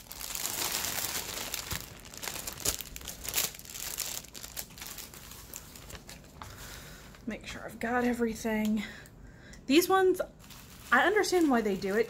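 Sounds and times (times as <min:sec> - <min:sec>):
plastic bags crinkling: 0:00.0 - 0:07.2, 0:10.2 - 0:12.0.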